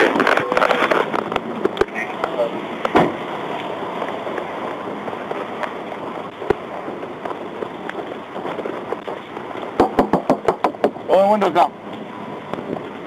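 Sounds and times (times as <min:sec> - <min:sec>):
microphone rustle and hiss: 0:00.0 - 0:10.4
sharp knocks or footsteps: 0:09.8 - 0:11.0.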